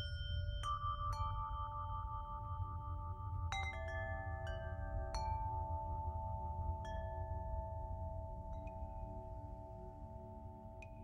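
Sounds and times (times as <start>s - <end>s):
ringing bell-like chimes: 0.0s - 9.3s.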